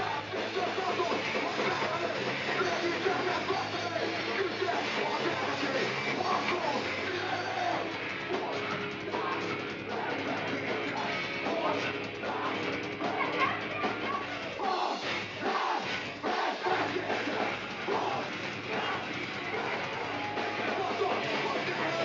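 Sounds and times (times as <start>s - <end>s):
heavy metal band playing: 0.0s - 22.0s
shouted vocals: 0.0s - 22.0s.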